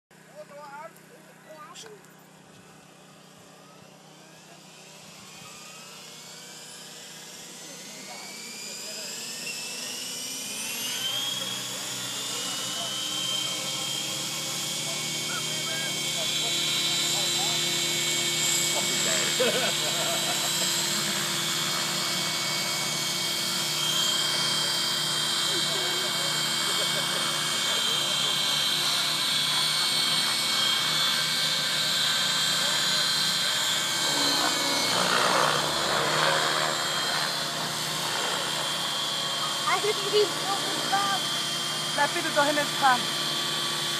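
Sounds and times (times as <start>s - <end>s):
model helicopter rotor whines: 0.2s - 43.9s.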